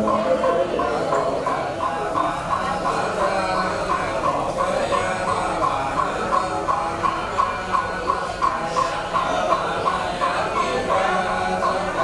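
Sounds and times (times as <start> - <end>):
wooden fish struck steadily: 0.0 - 12.0.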